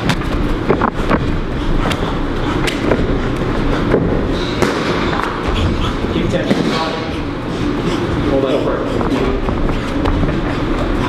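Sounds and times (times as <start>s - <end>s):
constant low rumble: 0.0s - 11.0s.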